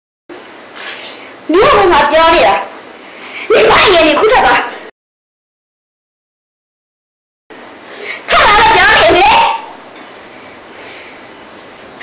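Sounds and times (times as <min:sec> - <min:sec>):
woman speaking emotionally: 0:01.5 - 0:02.7, 0:03.5 - 0:04.9, 0:08.2 - 0:09.7.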